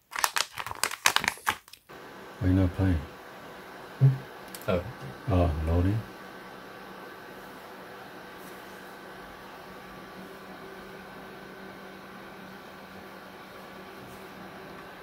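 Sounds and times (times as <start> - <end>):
computer fan hum and whine: 1.9 - 15.0.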